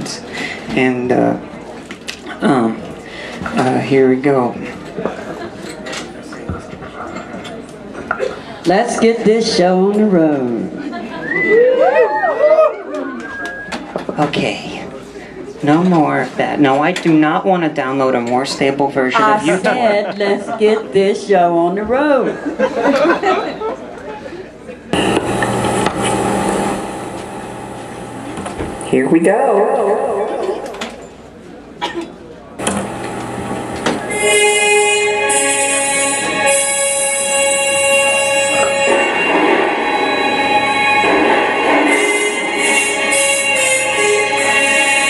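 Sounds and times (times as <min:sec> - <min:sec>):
room noise: 0:24.9 - 0:45.0
electronic hum and hiss: 0:25.0 - 0:29.3, 0:32.6 - 0:34.5.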